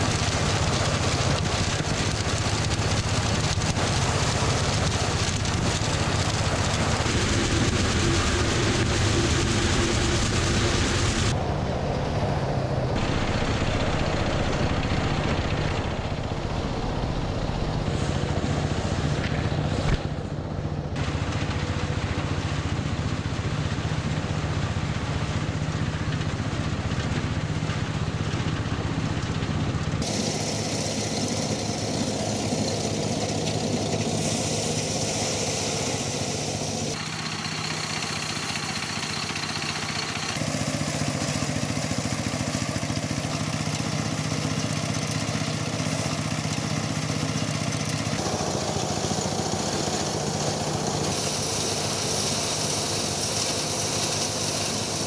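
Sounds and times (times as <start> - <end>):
threshing machine running: 0.0 - 55.0.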